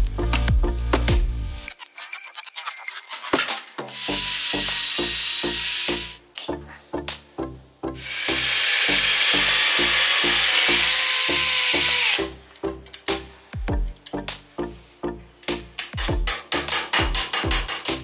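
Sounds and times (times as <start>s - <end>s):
music with steady beat: 0.0s - 1.8s, 9.4s - 14.8s, 15.4s - 18.0s
cutting disc grinding steel: 1.8s - 6.2s, 8.0s - 12.4s.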